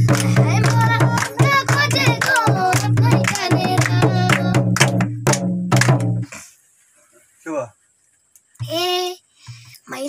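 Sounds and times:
children singing: 0:00.0 - 0:04.8
music with drum beat: 0:00.0 - 0:06.4.

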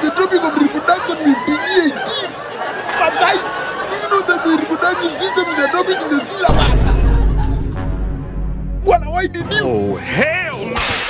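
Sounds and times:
voices chattering and laughing: 0:00.0 - 0:07.8.

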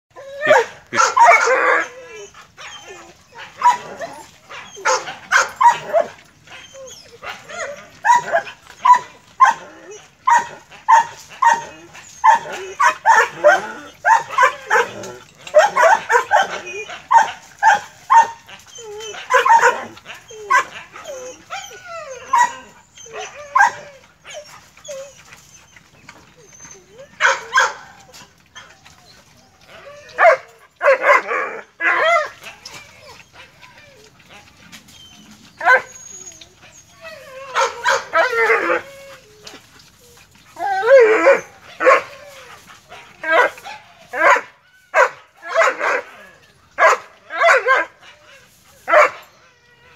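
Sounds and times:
dogs barking and yelping: 0:00.1 - 0:49.9.

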